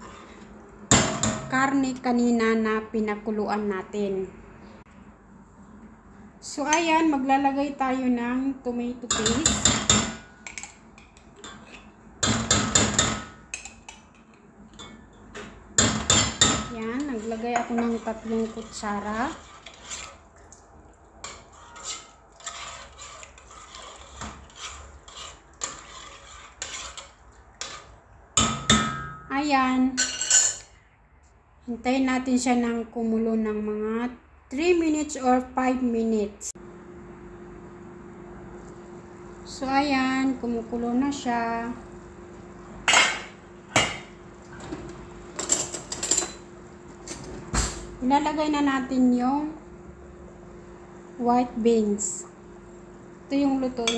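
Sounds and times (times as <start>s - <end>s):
spoon scraping metal pot: 0.0s - 0.5s, 9.1s - 14.1s, 14.7s - 20.3s, 21.2s - 28.0s
dishes knocking and clinking: 12.2s - 14.0s, 14.7s - 16.7s, 28.4s - 29.3s, 42.8s - 46.4s.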